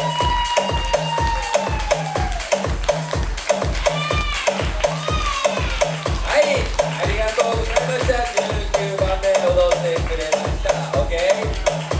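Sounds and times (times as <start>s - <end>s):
electronic dance music: 0.0s - 11.9s.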